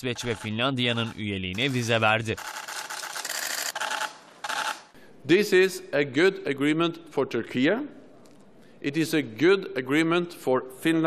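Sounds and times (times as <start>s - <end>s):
camera shutters clicking rapidly: 1.6s - 4.9s.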